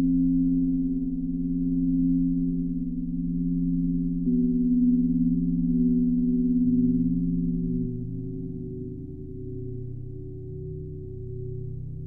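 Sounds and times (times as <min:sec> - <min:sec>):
sustained synthesizer sine tones: 0:00.0 - 0:12.0.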